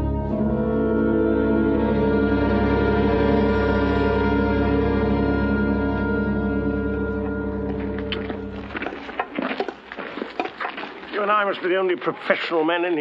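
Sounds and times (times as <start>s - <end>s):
film score with held chords: 0.0s - 8.8s
low drone: 0.0s - 9.0s
footsteps clicks and scuffs: 7.6s - 13.0s.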